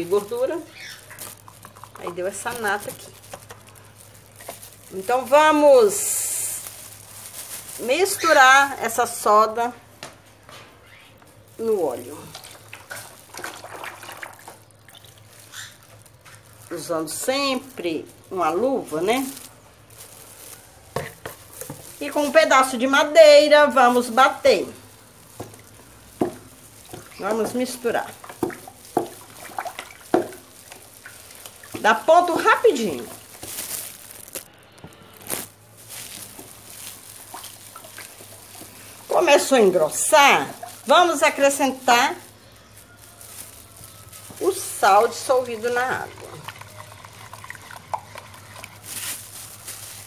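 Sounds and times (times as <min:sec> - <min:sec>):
liquid sloshing in a basin: 0:00.0 - 0:05.4, 0:12.2 - 0:16.0, 0:25.2 - 0:33.6, 0:36.1 - 0:41.6, 0:44.6 - 0:49.8
stick stirring strokes: 0:00.0 - 0:08.6, 0:11.3 - 0:22.8, 0:23.7 - 0:50.0.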